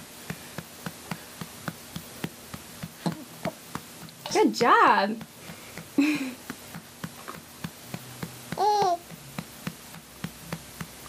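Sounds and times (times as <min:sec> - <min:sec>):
hand patting baby's back: 0:00.2 - 0:04.2, 0:05.2 - 0:11.0
baby vocal sound: 0:08.6 - 0:09.1.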